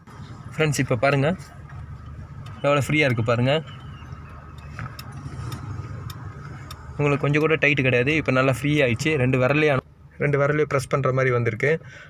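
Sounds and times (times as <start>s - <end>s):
car engine idling: 0.0s - 12.0s
light ticks: 1.6s - 7.7s.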